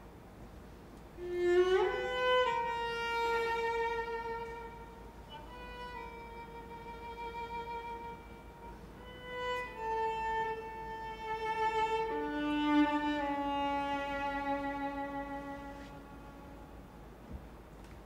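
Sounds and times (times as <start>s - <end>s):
solo viola sustained notes: 1.2s - 17.2s.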